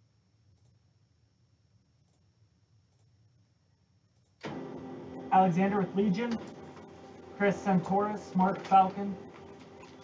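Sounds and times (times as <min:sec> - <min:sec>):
printer mechanical whir: 0:04.4 - 0:10.0.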